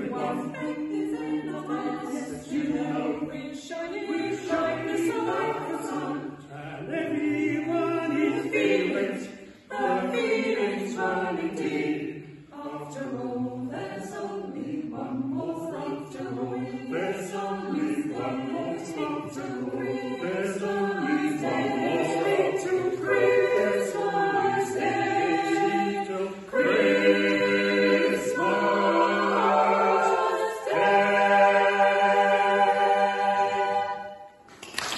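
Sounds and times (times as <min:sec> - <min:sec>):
mixed choir singing: 0:00.0 - 0:34.5.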